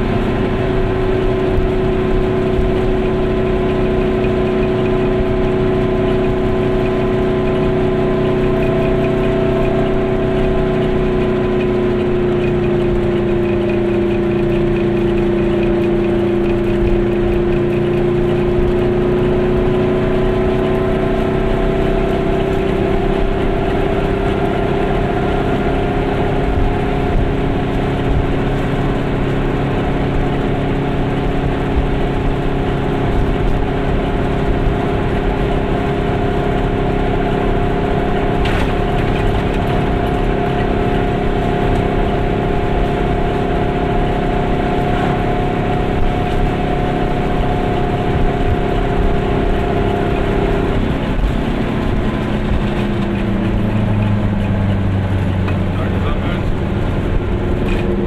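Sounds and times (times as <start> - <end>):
two-stroke car engine running: 0.0 - 58.0.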